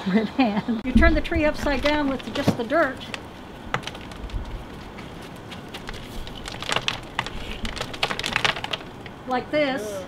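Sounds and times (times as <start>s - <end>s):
faint rustling: 0.9s - 9.2s.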